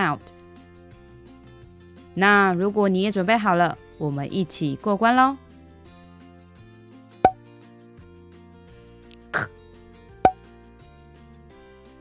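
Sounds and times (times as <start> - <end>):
soft children's background music: 0.0 - 12.0.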